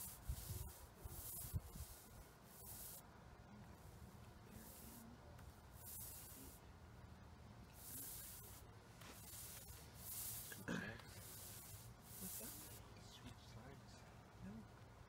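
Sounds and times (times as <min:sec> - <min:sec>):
paint roller swishing: 0:00.0 - 0:03.0, 0:04.5 - 0:05.1, 0:05.7 - 0:06.6, 0:07.7 - 0:12.9.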